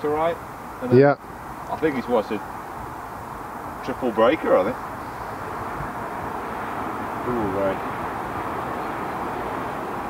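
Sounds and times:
outdoor background rumble: 0.0 - 10.0.

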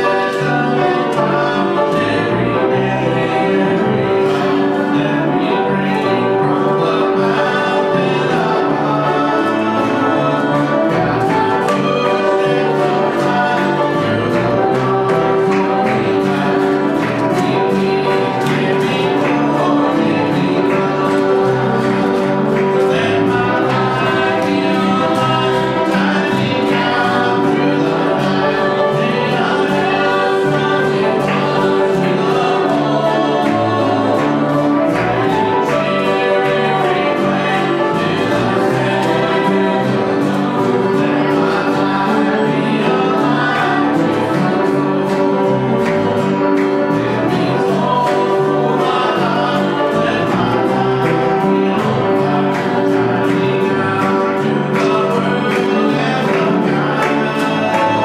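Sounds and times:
congregation singing a hymn: 0.0 - 58.0
instrument accompanying: 0.0 - 58.0.

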